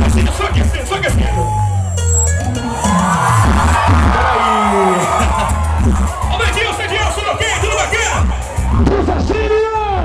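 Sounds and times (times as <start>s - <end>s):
crowd noise: 0.0s - 10.0s
dance music with heavy bass: 0.0s - 10.0s
sliding pitch effects: 1.9s - 6.3s.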